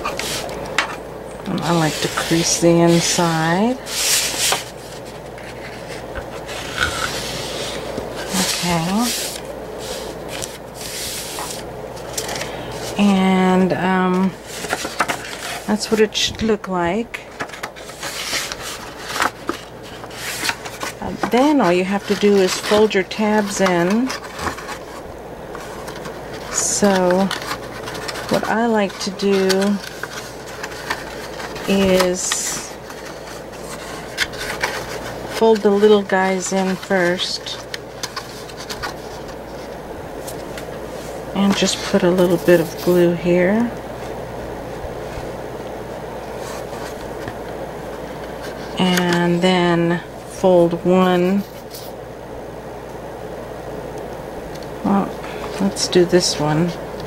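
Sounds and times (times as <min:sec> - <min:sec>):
hands rubbing paper bag: 0:01.5 - 0:45.4
paper scraping on tabletop: 0:01.6 - 0:13.1, 0:17.4 - 0:25.0.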